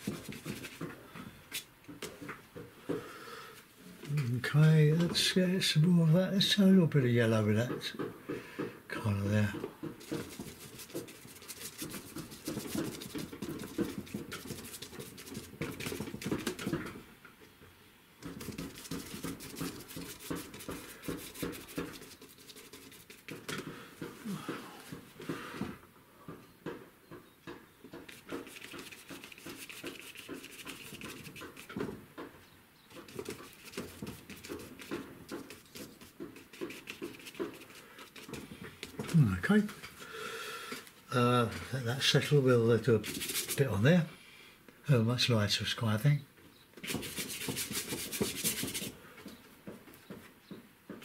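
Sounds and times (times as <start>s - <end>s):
bristle brush scratchy taps on paper: 0.0s - 1.0s, 9.5s - 16.9s, 18.2s - 24.1s, 27.5s - 32.0s, 32.9s - 39.2s, 43.0s - 43.6s, 46.8s - 49.0s.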